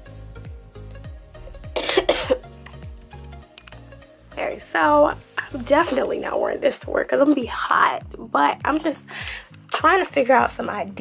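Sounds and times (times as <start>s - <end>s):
music with sliding bass: 0.0s - 11.0s
person coughing: 1.8s - 2.5s.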